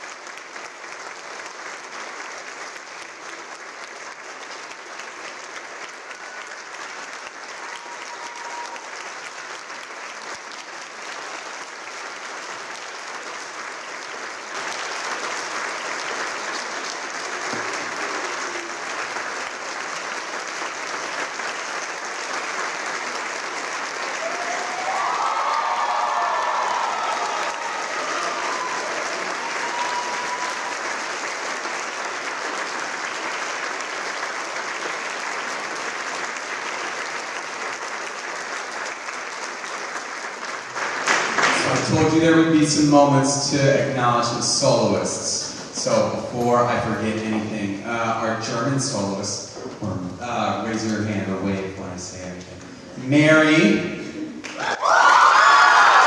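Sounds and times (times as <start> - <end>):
audience applauding: 0.0 - 50.9, 51.5 - 56.0.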